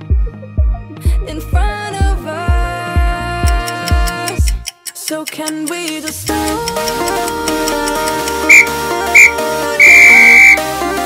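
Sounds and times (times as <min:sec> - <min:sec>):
electronic background music: 0:00.0 - 0:11.0
electronic timer beeps: 0:08.4 - 0:10.6.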